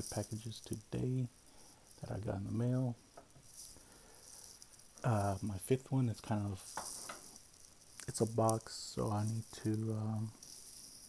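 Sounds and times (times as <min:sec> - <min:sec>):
faint high hiss: 0:00.0 - 0:11.0
light crackles and ticks: 0:00.0 - 0:11.0.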